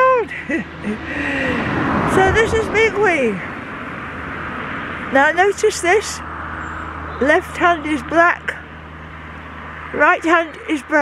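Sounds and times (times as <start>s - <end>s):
woman laughing: 0.0s - 1.6s
car road noise: 0.0s - 11.0s.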